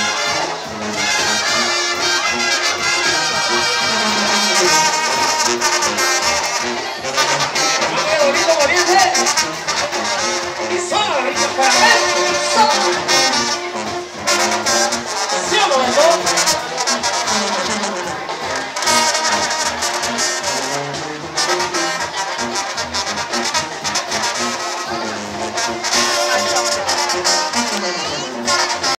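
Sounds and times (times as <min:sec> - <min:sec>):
brass band playing: 0:00.0 - 0:28.9
sousaphone: 0:01.8 - 0:18.4, 0:24.6 - 0:28.9.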